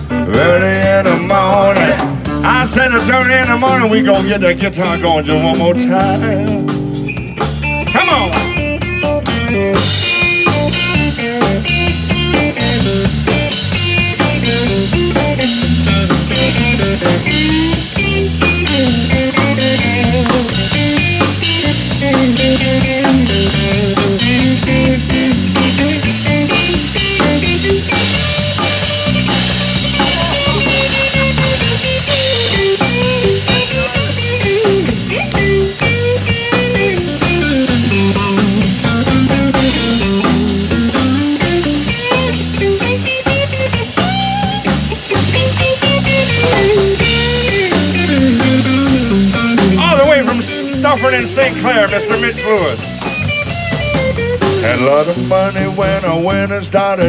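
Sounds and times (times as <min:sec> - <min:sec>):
blues band playing: 0:00.0 - 0:57.0
electric guitar solo with bent notes: 0:00.0 - 0:57.0
steady drum kit beat: 0:00.0 - 0:57.0.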